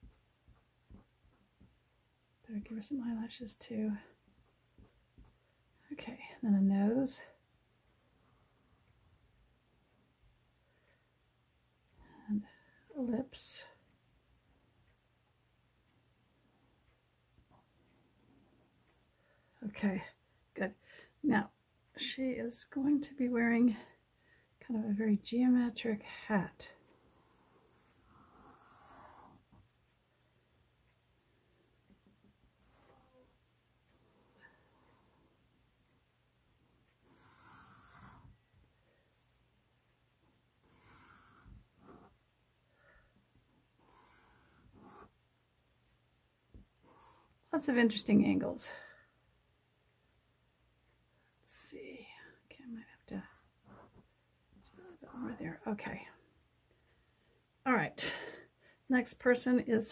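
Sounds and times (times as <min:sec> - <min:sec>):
marker scratching on paper: 0:40.6 - 0:42.2, 0:43.8 - 0:45.2, 0:46.8 - 0:47.4.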